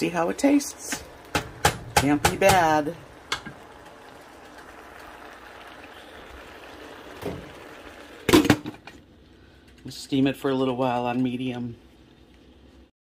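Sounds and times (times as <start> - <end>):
pot cooking with a hiss: 0.0 - 12.9.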